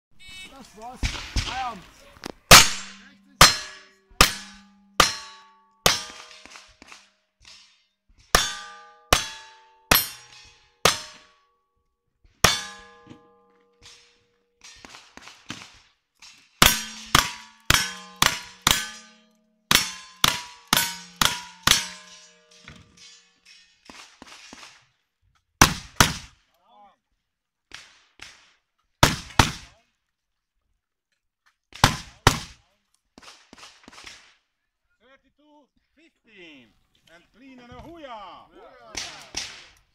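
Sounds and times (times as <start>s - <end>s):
loud gunshots: 2.5s - 3.6s, 25.6s - 26.3s, 29.0s - 29.7s, 31.8s - 32.6s
rifle shots: 2.5s - 3.6s
metallic ring of steel plate: 2.5s - 6.5s, 8.3s - 11.5s, 12.4s - 14.8s, 16.6s - 23.9s.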